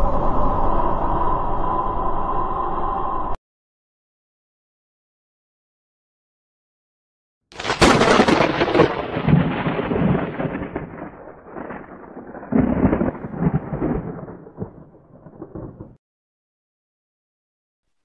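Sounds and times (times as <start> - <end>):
rolling thunder rumble: 7.6 - 16.0
thunder crack: 7.6 - 16.0.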